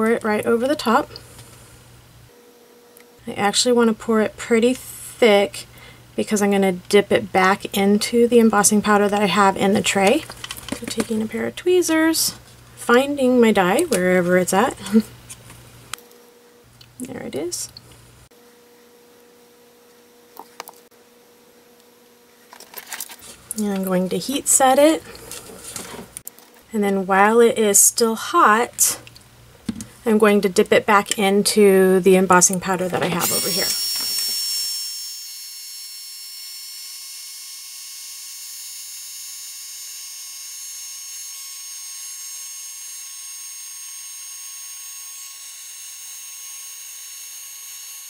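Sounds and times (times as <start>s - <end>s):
faint steady hum: 0.0s - 34.7s.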